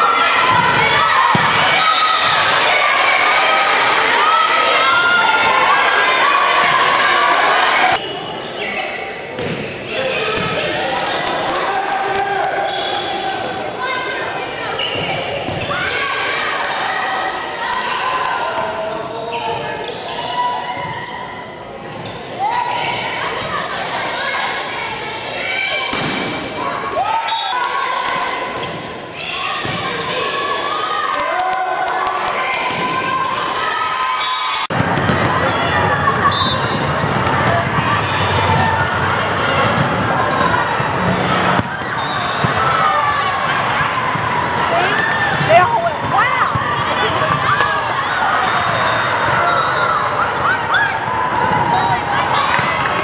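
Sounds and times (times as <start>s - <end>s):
players and spectators shouting: 0.0s - 53.0s
volleyball smacks echoing: 0.5s - 1.8s, 9.3s - 11.6s, 25.7s - 26.6s.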